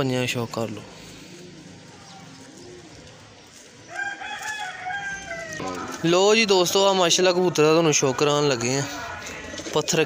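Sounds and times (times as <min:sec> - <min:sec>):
pigeons cooing softly: 0:00.0 - 0:06.1
rooster crowing: 0:03.9 - 0:06.0.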